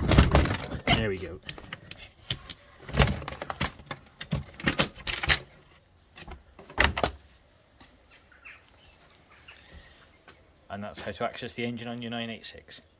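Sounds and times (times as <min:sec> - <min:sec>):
loud thunks: 0:00.0 - 0:01.0.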